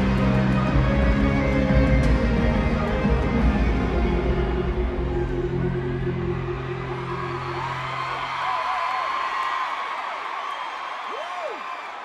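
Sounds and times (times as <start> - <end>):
low music drone: 0.0 - 8.2
crowd screaming and whooping: 0.0 - 12.0.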